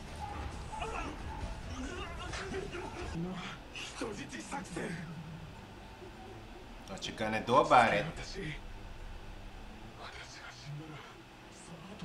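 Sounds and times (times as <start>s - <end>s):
soft background music: 0.0s - 5.0s.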